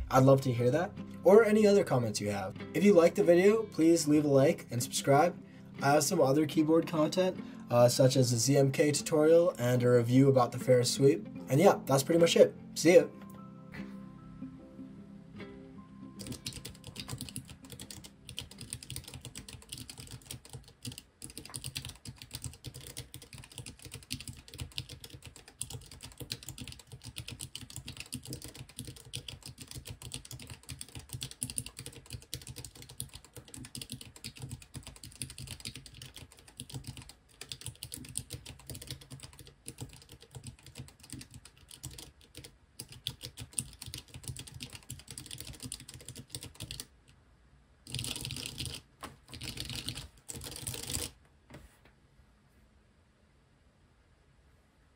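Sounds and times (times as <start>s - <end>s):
fast keyboard typing: 16.2s - 46.9s, 47.9s - 51.2s.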